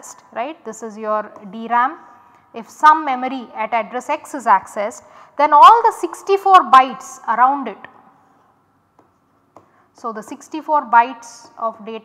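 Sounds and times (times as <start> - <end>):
stylus tapping on tablet screen: 8.9 - 9.8.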